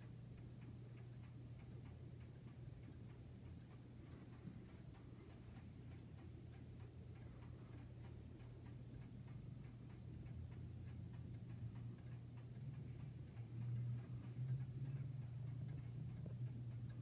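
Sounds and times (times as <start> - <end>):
clock pendulum ticking: 0.0 - 17.0
low steady hum: 0.0 - 17.0.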